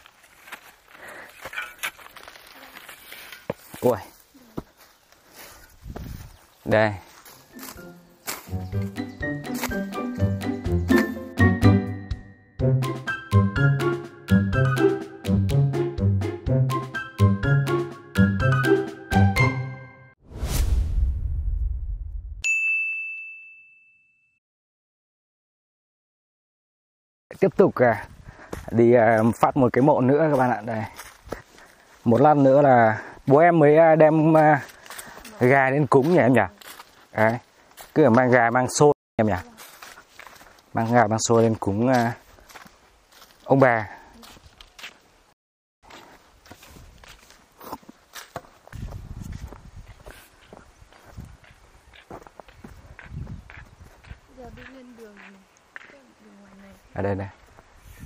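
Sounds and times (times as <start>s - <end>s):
footsteps on dirt path: 0.0s - 11.6s, 27.3s - 58.0s
low rumbling whoosh: 20.2s - 22.4s
bright ding: 22.4s - 24.4s.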